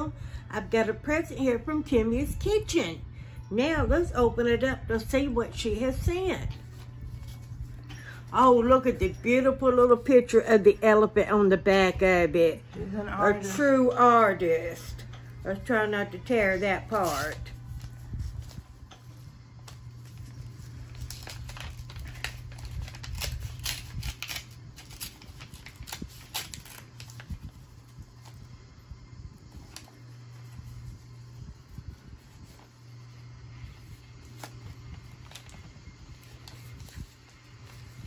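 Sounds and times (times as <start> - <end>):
steady low hum: 0.0 - 38.0
paper envelope crinkling and tearing: 6.5 - 8.9, 16.8 - 28.5, 29.5 - 38.0.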